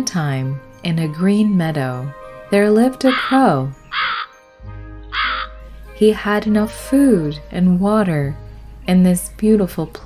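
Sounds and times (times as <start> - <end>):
soft background music: 0.0 - 10.0
crow cawing: 3.1 - 4.4, 5.1 - 5.6.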